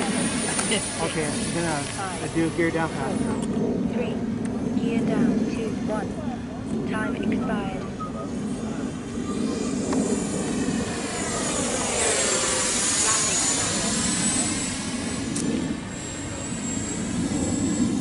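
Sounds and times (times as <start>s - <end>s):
model jet fan whine: 0.0s - 18.0s.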